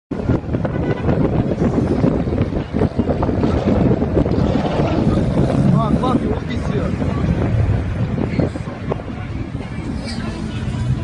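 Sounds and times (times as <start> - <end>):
cars driving on road: 0.1 - 11.0
wind buffeting microphone: 0.1 - 11.0.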